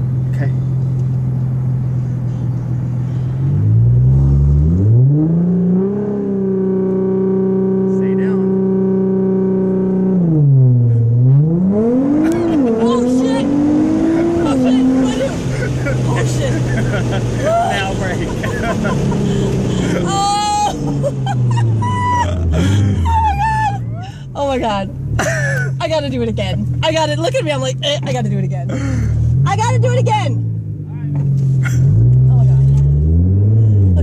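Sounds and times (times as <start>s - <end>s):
quick gear upshifts: 0.0s - 34.0s
sports car engine revving: 0.0s - 34.0s.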